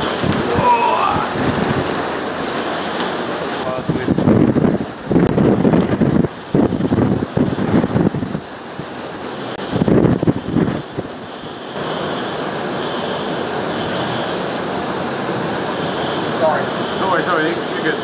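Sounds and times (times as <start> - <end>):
wind gusts buffeting microphone: 0.0 - 18.0
wind-driven rain rushing: 0.0 - 18.0.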